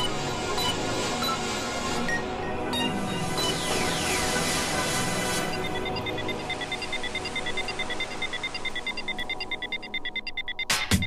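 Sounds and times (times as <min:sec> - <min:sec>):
steady synth tones: 0:00.0 - 0:10.4.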